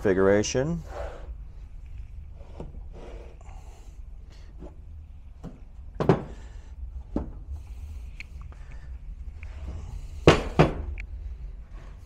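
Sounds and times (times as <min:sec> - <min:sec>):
low steady hum: 0:00.0 - 0:12.0
heavy blocks knocking on workbench: 0:05.4 - 0:06.4, 0:10.2 - 0:10.9.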